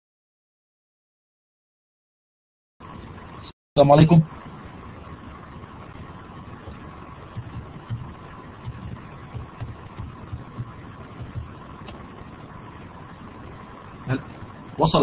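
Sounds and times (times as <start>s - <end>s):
faint steady whine: 2.8s - 15.0s
microphone line hiss: 2.8s - 15.0s
soft low bumps: 6.6s - 12.9s.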